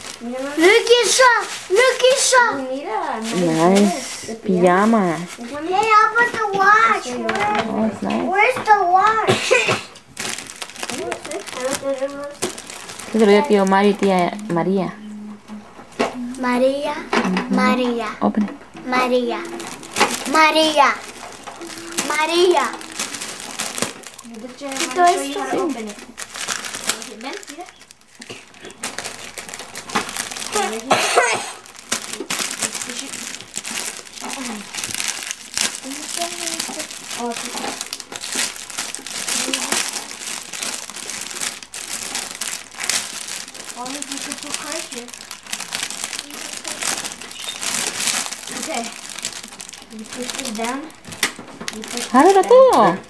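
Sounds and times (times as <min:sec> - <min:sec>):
wrapping paper crinkling: 0:00.0 - 0:53.0.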